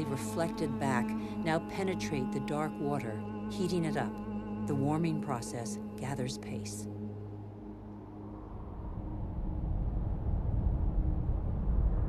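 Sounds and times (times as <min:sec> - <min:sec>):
low noisy rumble: 0:06.9 - 0:12.0.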